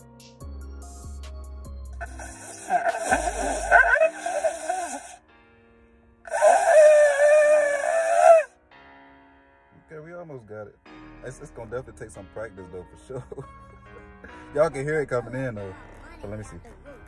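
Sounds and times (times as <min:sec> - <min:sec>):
shofar blasts: 0:06.3 - 0:08.5.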